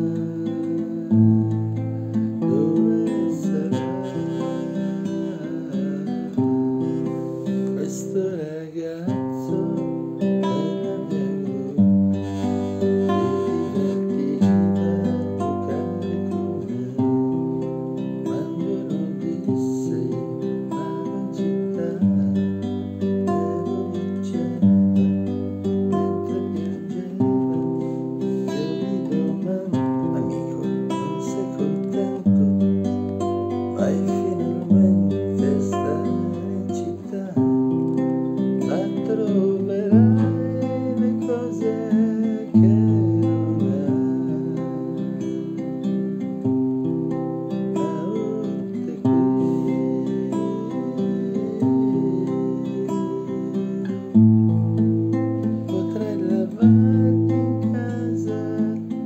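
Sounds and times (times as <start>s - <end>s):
man singing: 0.0s - 59.0s
nylon-string guitar strumming chords: 0.0s - 59.0s.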